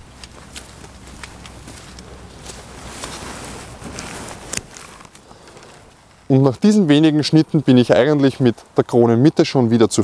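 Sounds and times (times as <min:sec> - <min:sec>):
footsteps on dry grass: 0:00.0 - 0:06.3
rustling and handling noise: 0:00.0 - 0:06.6.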